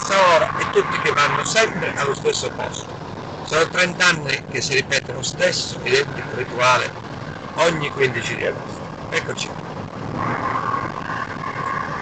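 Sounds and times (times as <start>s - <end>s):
car engine and road noise: 0.0s - 12.0s
steady whine: 0.0s - 12.0s.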